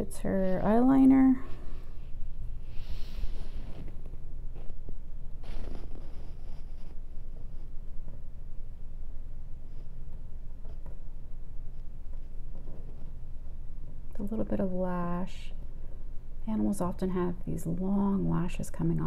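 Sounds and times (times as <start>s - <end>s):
low room hum: 0.0s - 19.0s
soft rustles of brush and paper: 0.2s - 14.1s.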